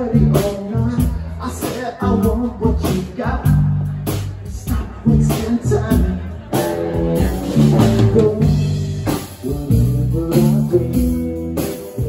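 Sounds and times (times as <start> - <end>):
electric bass: 0.0 - 12.0
electric guitar: 0.0 - 12.0.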